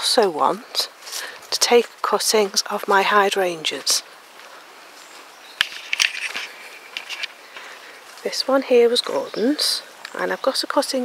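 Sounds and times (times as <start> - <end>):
quiet outdoor ambience: 0.0 - 11.0
soft footsteps in garden: 0.0 - 11.0.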